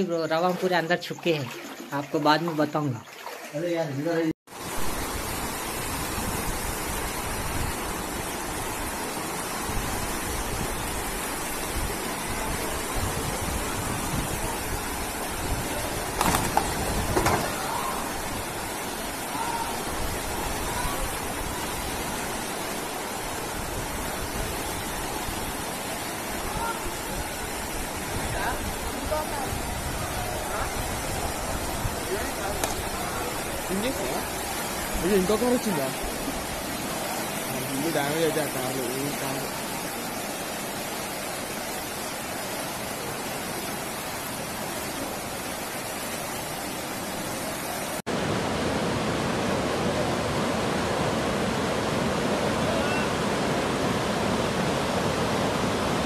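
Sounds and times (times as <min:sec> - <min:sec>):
floodwater rushing: 0:00.0 - 0:56.0.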